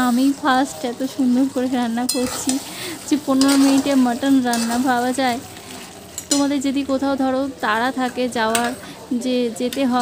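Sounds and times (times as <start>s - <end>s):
meat sizzling while stirred: 0.0s - 10.0s.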